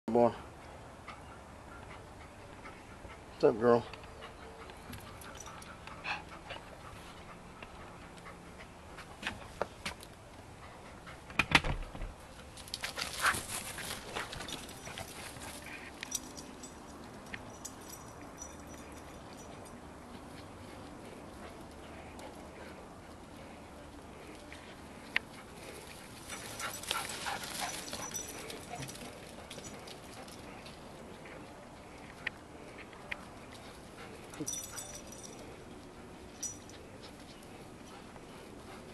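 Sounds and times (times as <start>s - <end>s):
dog breathing hard: 4.1s - 9.6s, 17.5s - 38.9s.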